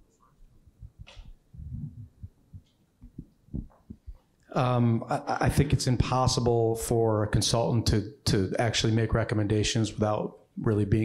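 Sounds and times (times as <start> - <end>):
microphone handling thumps: 0.8 - 4.2.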